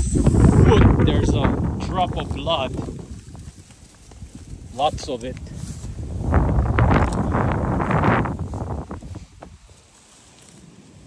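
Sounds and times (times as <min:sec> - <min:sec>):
wind buffeting microphone: 0:00.0 - 0:09.8
dry grass brushing and crackling: 0:00.0 - 0:11.0.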